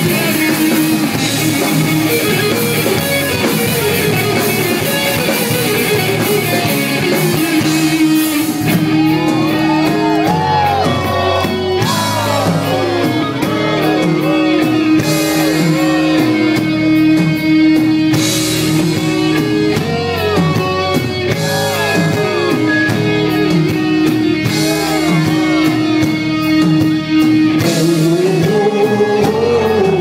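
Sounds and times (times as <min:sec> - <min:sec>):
gliding lead guitar melody: 0:00.0 - 0:30.0
heavy metal band playing: 0:00.0 - 0:30.0.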